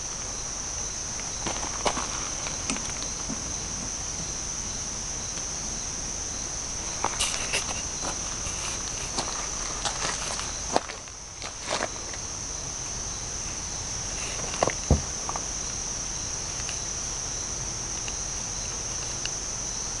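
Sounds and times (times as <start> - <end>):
insects chirring: 0.0 - 20.0.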